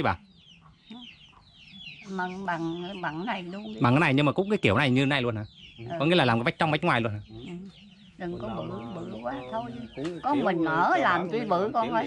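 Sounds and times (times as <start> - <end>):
chicks cheeping: 0.0 - 12.0.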